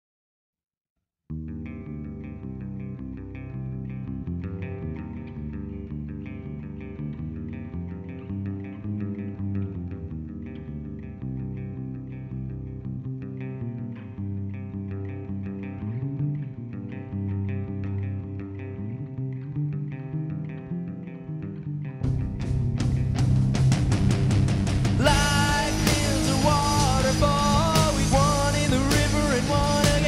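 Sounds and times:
bass guitar: 1.3s - 30.0s
electric guitar riff: 1.3s - 30.0s.

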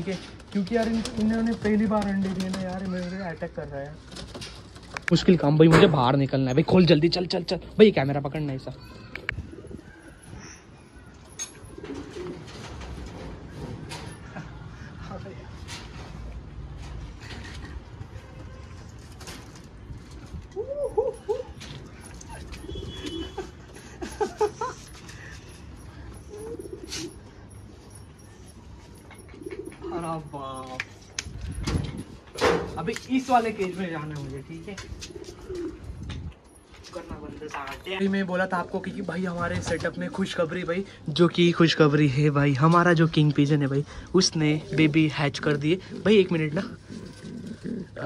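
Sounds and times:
pigeons cooing: 9.3s - 15.0s, 20.4s - 27.7s, 29.0s - 30.2s, 35.0s - 36.0s, 44.5s - 48.0s.

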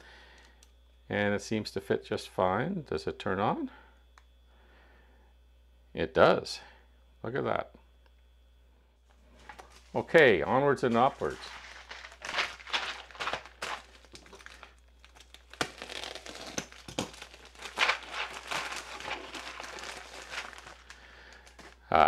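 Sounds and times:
plastic mailing bag crinkling: 9.3s - 21.9s.

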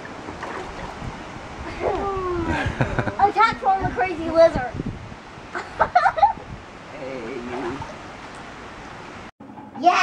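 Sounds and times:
water sloshing in paddling pool: 0.0s - 2.0s, 7.4s - 8.5s
child's voice: 3.2s - 4.8s, 9.8s - 10.0s.

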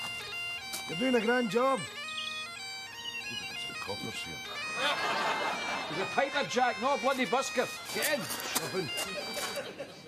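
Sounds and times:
bagpipes playing: 0.0s - 10.0s.

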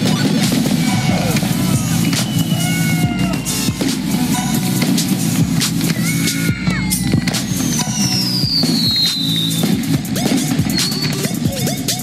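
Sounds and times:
background music with low notes: 0.0s - 12.0s
falling firework whistle: 0.0s - 12.0s
fireworks popping and crackling: 0.0s - 12.0s.

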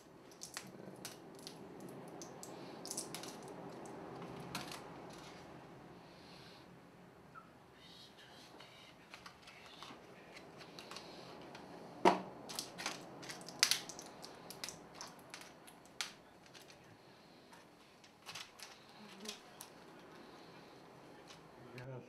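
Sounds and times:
blister pack foil popping: 0.3s - 1.6s, 2.2s - 5.4s, 12.5s - 16.8s.

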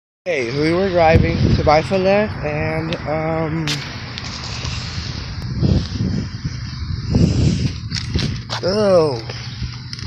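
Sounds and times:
steady outdoor hiss: 0.3s - 10.0s
footsteps on dirt: 3.7s - 10.0s.

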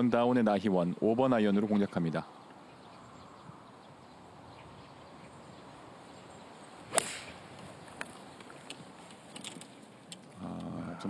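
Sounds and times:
faint outdoor background: 0.0s - 11.0s
golf club striking ball: 6.9s - 7.4s.

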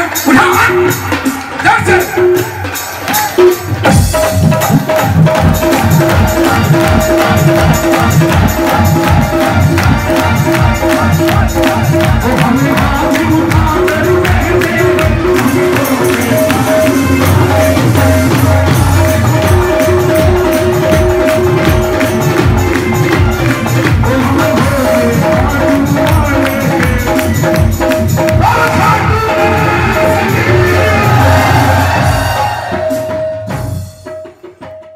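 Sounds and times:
devotional music over sound system: 0.0s - 34.9s
fast steady percussion: 0.0s - 34.9s
person singing: 5.2s - 33.4s.

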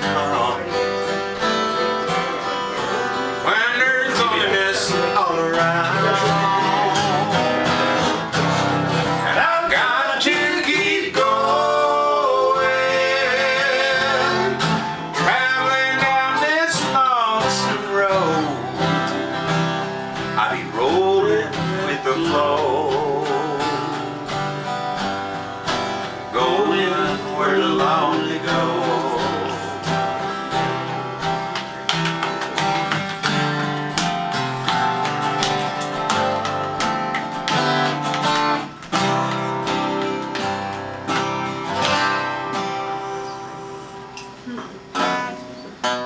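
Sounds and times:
acoustic guitars strumming: 0.0s - 46.0s.

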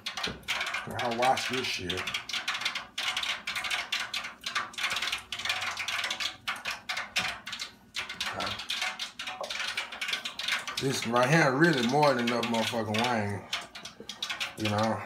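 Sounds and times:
wet batter mixing by hand: 0.0s - 15.0s.

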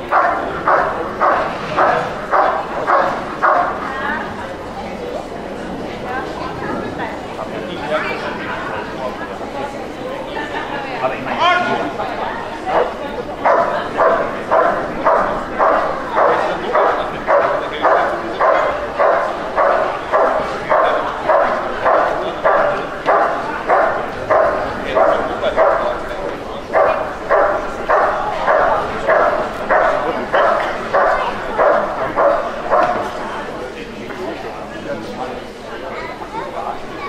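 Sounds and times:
dog barking: 0.0s - 4.0s, 12.6s - 33.2s.

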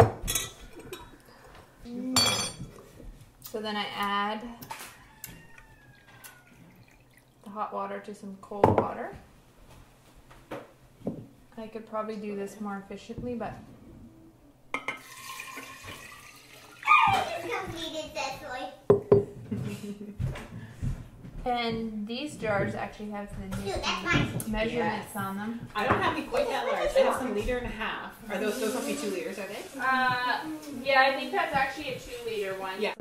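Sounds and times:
glass clinks: 2.2s - 2.6s
water pouring into glass jar: 5.5s - 7.5s, 15.0s - 16.9s.

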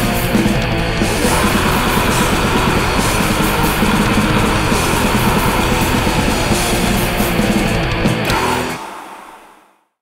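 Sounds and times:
distorted electric guitars: 0.0s - 9.6s
drums: 0.0s - 9.8s.

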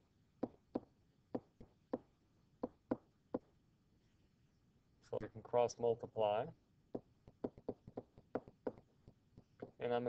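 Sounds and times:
stylus tapping on tablet screen: 6.9s - 9.8s.

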